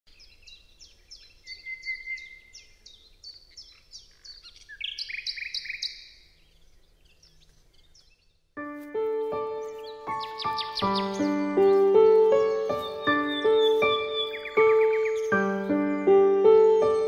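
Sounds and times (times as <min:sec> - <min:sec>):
birds chirping: 0:00.1 - 0:17.0
bird trill: 0:00.2 - 0:08.4, 0:09.4 - 0:17.0.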